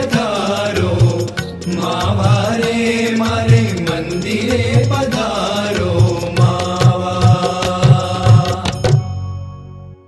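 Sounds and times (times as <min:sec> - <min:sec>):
drum beats: 0:00.0 - 0:09.1
person singing devotional song: 0:00.0 - 0:09.1.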